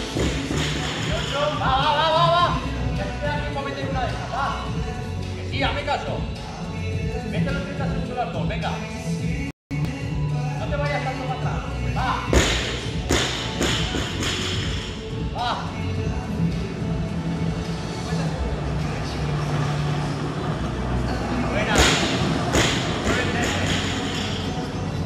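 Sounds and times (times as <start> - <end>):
background music: 0.0 - 25.0.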